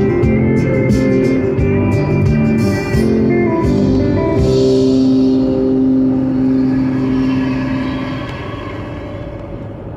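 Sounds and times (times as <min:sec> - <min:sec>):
car road noise from inside: 0:02.5 - 0:09.9.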